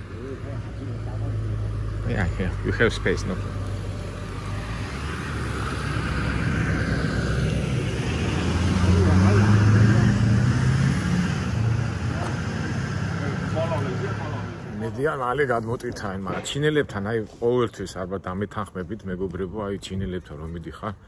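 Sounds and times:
faint voices talking: 0.0s - 5.0s, 8.7s - 10.9s
vehicle engines rumbling: 0.0s - 21.0s.

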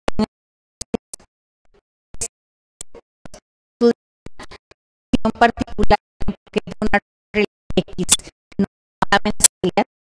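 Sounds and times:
woman speaking through a microphone: 5.2s - 8.2s, 9.0s - 9.9s.

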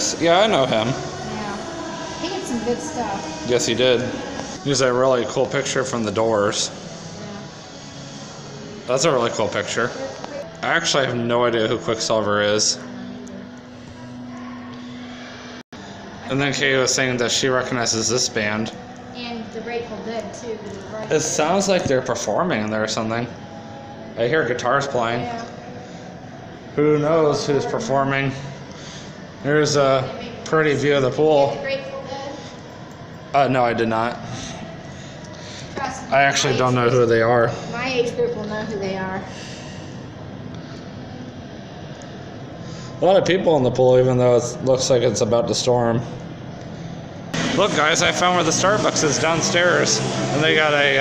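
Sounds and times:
low outdoor background rush: 0.0s - 51.0s.

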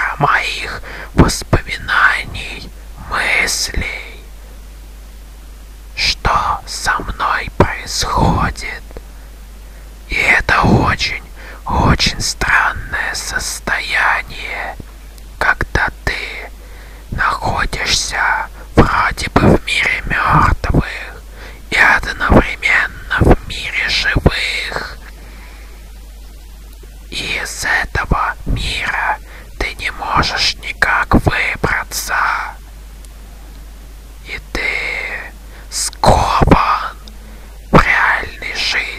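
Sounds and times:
person whispering: 0.0s - 4.3s, 6.0s - 9.0s, 10.1s - 14.8s, 15.4s - 25.2s, 27.1s - 32.6s, 34.2s - 38.9s.

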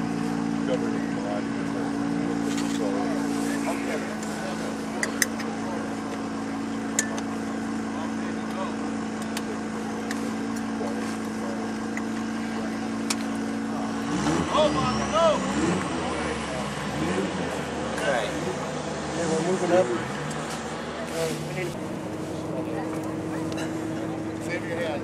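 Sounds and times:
engine idling: 0.0s - 25.0s.

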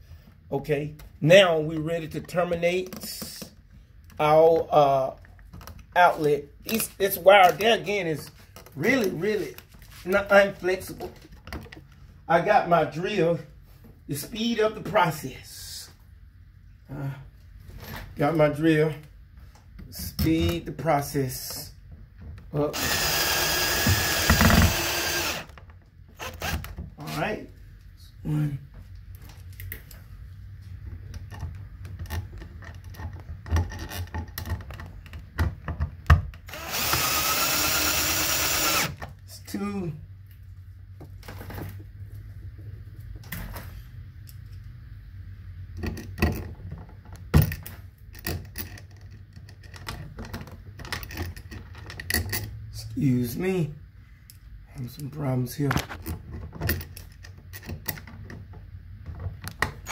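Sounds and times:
cordless drill driving screw: 22.7s - 25.6s, 26.2s - 26.7s, 36.5s - 39.0s.

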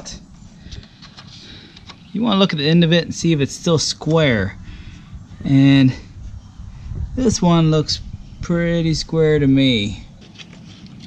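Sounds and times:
faint clicks and rustles: 0.6s - 2.2s, 10.2s - 11.0s.

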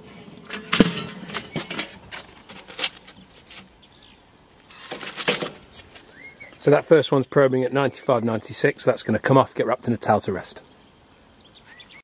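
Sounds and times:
rustling: 0.0s - 6.6s.

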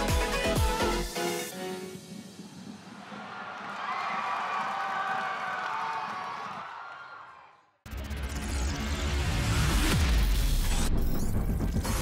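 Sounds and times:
crowd cheering: 2.5s - 7.8s.

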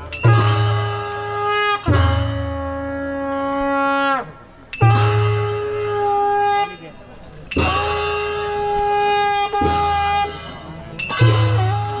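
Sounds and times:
wind instruments blasting long notes: 0.0s - 12.0s.

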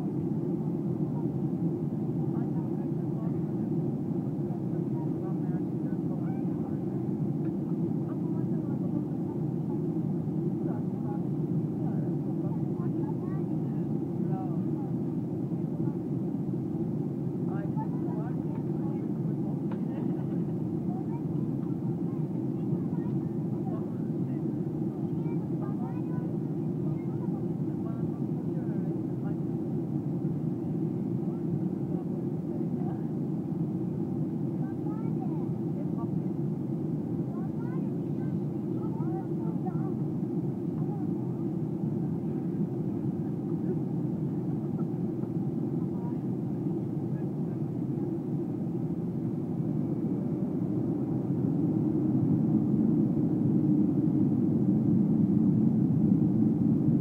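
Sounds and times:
airliner cabin engine drone: 0.0s - 57.0s
faint passenger chatter: 0.0s - 57.0s.

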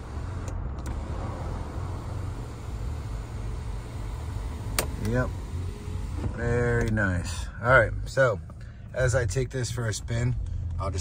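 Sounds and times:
car engine idling hum: 0.0s - 11.0s.

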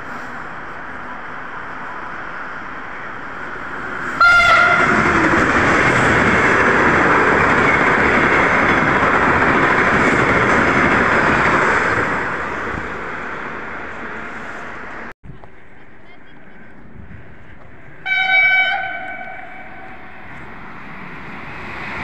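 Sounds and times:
high-speed train passing: 0.0s - 22.0s
train horn: 4.2s - 5.0s, 18.0s - 20.1s.

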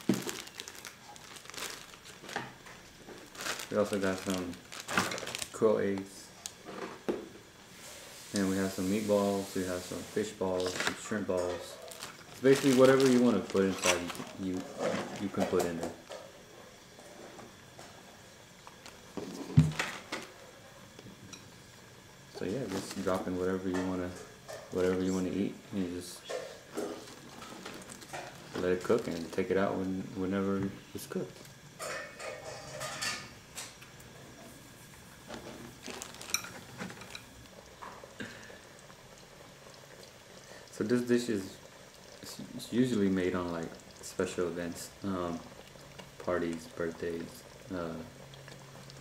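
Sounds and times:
broth bubbling: 34.1s - 49.0s.

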